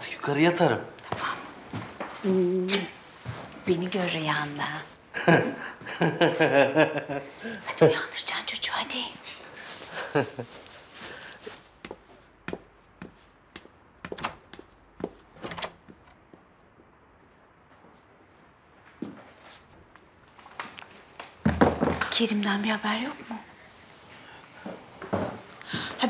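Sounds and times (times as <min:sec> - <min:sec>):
woman speaking: 0:02.2 - 0:03.0, 0:03.6 - 0:04.9, 0:22.1 - 0:23.5
footsteps on wooden floor: 0:11.1 - 0:17.0, 0:24.6 - 0:25.9
knocks on wooden floor: 0:21.4 - 0:22.1.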